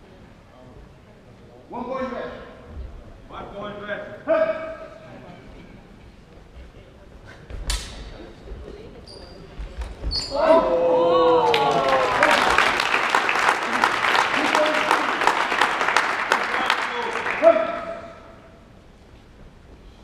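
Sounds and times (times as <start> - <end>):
crowd applauding and cheering: 10.8 - 18.2.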